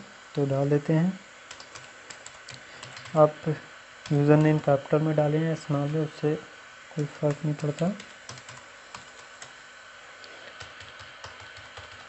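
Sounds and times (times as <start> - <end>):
computer keyboard key clicks: 1.5 - 3.1, 7.3 - 9.5, 10.6 - 12.0.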